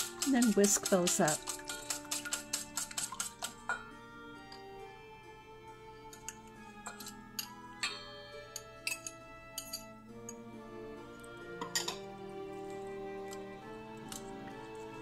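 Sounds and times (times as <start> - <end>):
metal utensils clinking on bowl: 0.0 - 3.9, 6.0 - 10.4, 11.6 - 12.7, 14.0 - 15.0
background music: 0.0 - 15.0.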